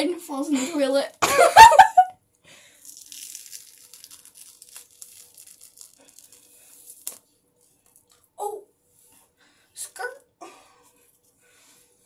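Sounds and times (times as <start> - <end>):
face mask peeling crackle: 2.8 - 7.2.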